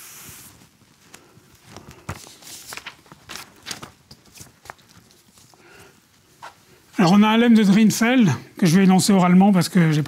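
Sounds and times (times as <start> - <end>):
footsteps: 0.4 - 7.1
paper rustling: 1.1 - 5.8.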